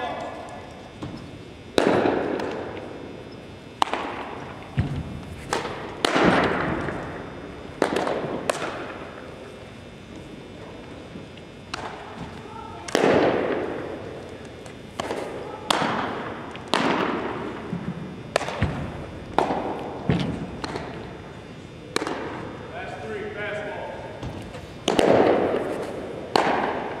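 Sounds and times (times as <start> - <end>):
baseballs smacking into mitts: 3.8 - 7.2, 7.8 - 9.0, 11.7 - 13.9, 14.6 - 21.1, 21.9 - 22.5, 24.2 - 27.0
faint voices: 12.0 - 13.0, 13.9 - 16.5.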